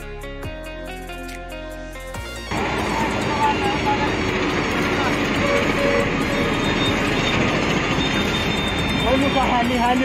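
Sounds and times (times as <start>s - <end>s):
heavy road traffic rumble: 2.2s - 10.0s.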